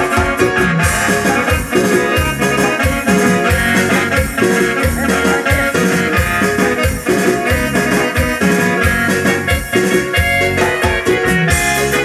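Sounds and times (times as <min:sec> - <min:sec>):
dance band playing: 0:00.0 - 0:12.0.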